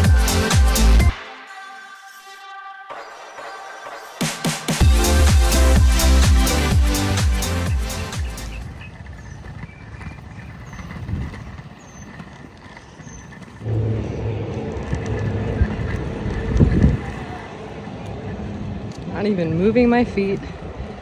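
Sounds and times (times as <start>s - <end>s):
low motor hum: 13.4s - 21.0s.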